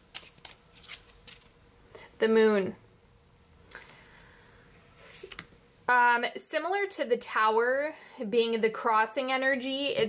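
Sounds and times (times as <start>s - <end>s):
cards being shuffled: 0.0s - 1.6s.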